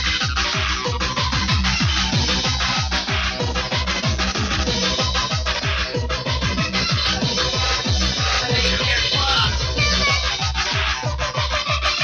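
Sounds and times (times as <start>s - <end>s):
fast kick drum: 0.0s - 12.0s
hardcore dance music: 0.0s - 12.0s.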